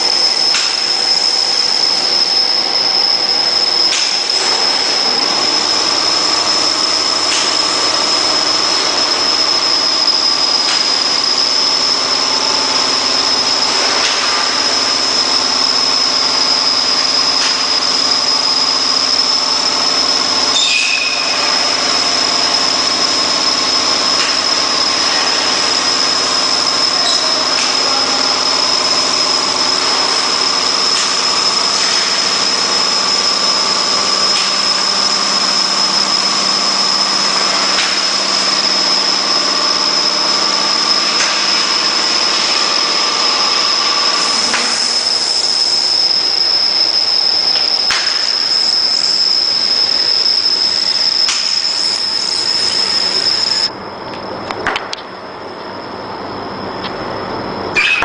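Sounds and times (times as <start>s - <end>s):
high constant whine: 0.0s - 58.0s
laminator running: 0.0s - 58.0s.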